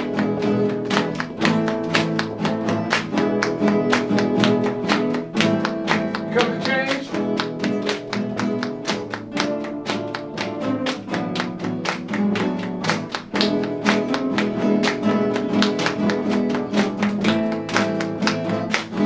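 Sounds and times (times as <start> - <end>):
acoustic guitars playing together: 0.0 - 19.0.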